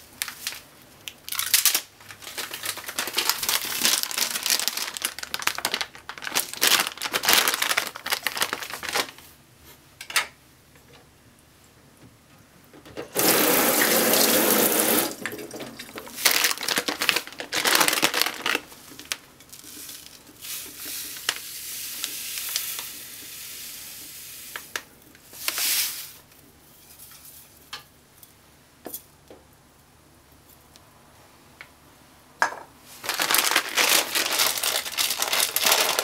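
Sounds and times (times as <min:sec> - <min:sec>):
tap water running into sink: 0:13.1 - 0:16.0
rustling: 0:32.9 - 0:36.0.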